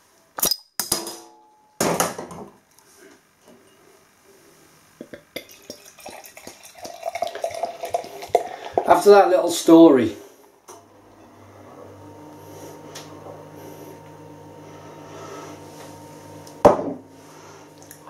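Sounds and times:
beer pouring into glass: 5.2 - 9.2.

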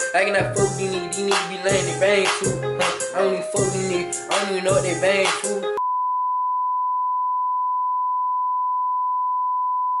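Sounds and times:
sine-wave test tone: 5.8 - 10.0.

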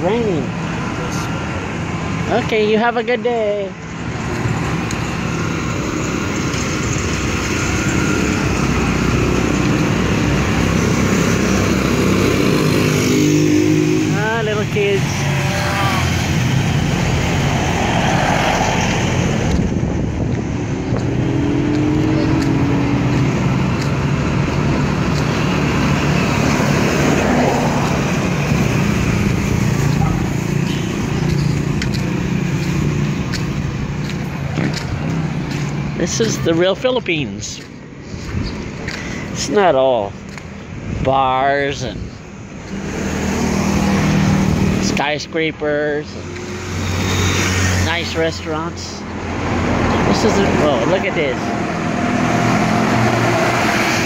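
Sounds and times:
motorcycle engines passing: 3.7 - 54.0.

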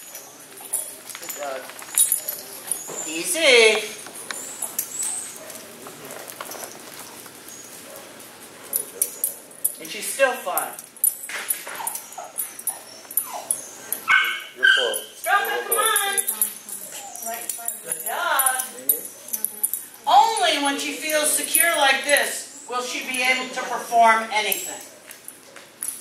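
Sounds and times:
dog whining and yipping: 4.3 - 5.5, 11.7 - 17.6.

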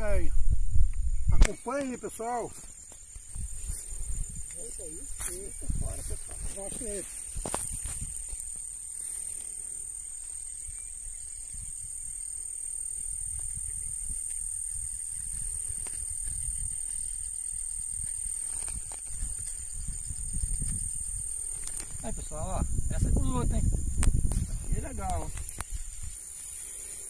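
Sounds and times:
insects buzzing: 0.0 - 27.0.

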